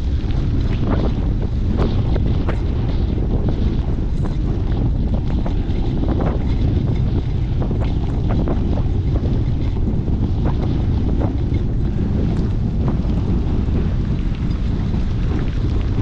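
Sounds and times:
tyres ticking on gritty mud: 0:00.0 - 0:16.0
wind buffeting microphone: 0:00.0 - 0:16.0.

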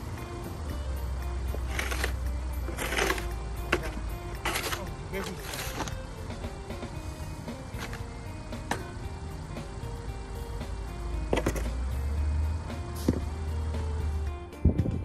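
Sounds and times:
deep drone: 0:00.0 - 0:14.6
background music: 0:00.0 - 0:15.0
snow shovel scraping packed snow: 0:01.6 - 0:06.0.

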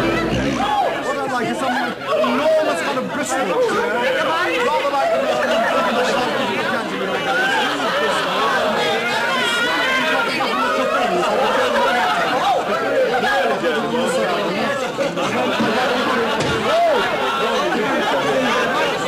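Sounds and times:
babble of many voices: 0:00.0 - 0:19.0.

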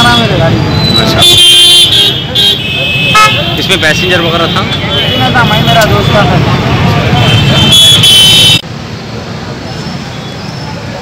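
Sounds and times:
street traffic hum: 0:00.0 - 0:11.0
men talking: 0:02.1 - 0:07.7
vehicle horn blast: 0:07.1 - 0:08.6.

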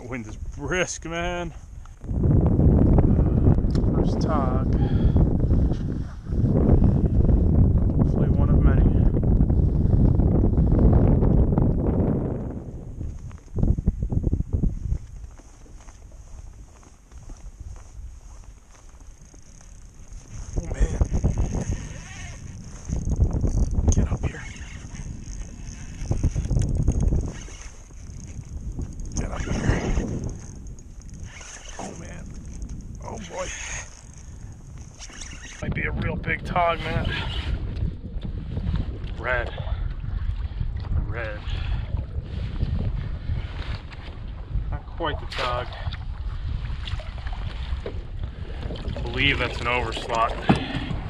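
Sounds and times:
gusty wind buffeting microphone: 0:00.0 - 0:51.0
person muttering: 0:20.6 - 0:22.4.

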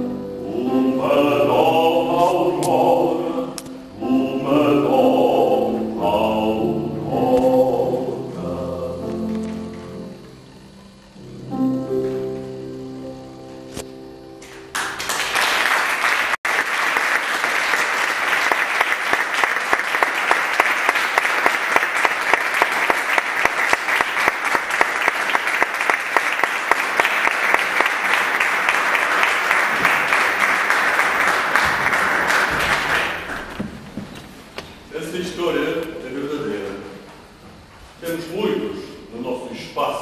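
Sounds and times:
piano chord: 0:00.0 - 0:15.2
audience applause: 0:14.4 - 0:33.8.

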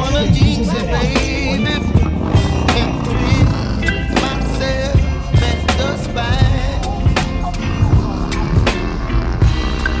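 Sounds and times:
music with drums: 0:00.0 - 0:10.0
steady low rumble: 0:00.0 - 0:10.0.

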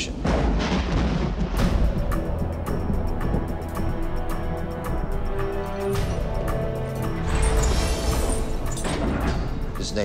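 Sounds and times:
deep rumbling boom: 0:00.2 - 0:03.4
music: 0:00.3 - 0:10.0.

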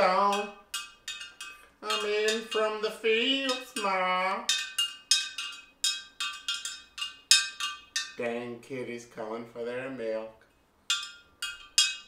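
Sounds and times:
metal spoon clinking glass jar: 0:00.0 - 0:08.2, 0:10.9 - 0:12.0.

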